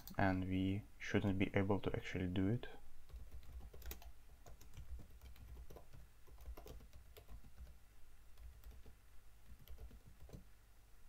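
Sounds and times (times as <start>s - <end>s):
computer keyboard typing: 3.1s - 7.8s, 8.4s - 10.5s.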